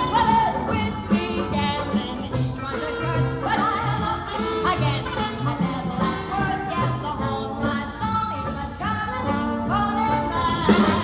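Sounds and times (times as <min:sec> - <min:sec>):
orchestra playing ragtime: 0:00.0 - 0:11.0.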